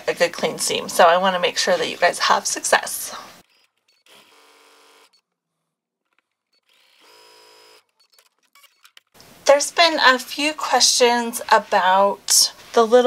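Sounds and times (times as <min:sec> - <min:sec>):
sewing machine stitching: 0:06.2 - 0:09.2.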